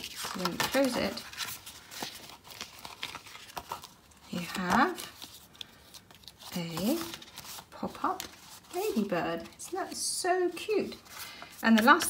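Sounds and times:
card stock rustling: 0.0 - 12.0.

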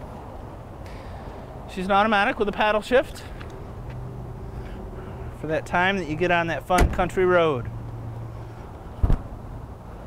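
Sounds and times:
short thump: 9.0 - 9.3.

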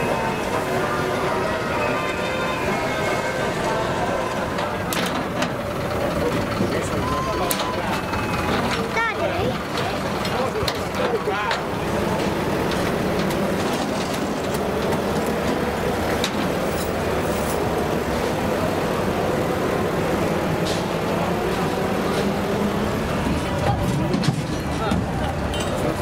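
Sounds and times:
vehicle engine humming: 0.0 - 26.0.

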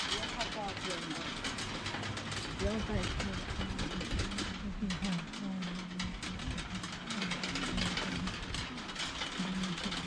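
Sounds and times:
metal prayer wheels rattling: 0.0 - 10.0.

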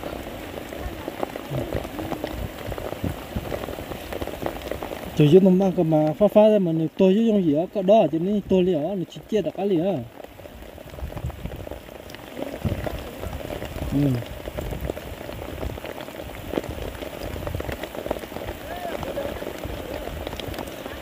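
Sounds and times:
light rain pattering on leaves: 0.0 - 21.0.

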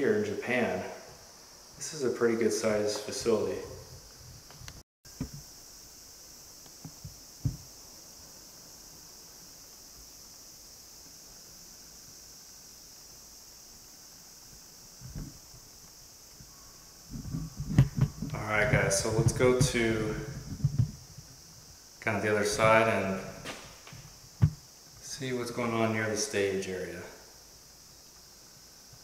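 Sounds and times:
steady high hiss: 0.0 - 29.0.

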